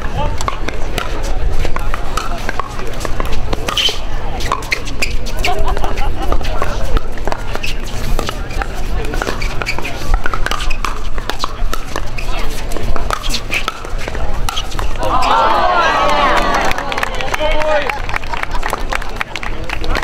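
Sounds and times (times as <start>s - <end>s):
spectators chatter: 0.0s - 20.0s.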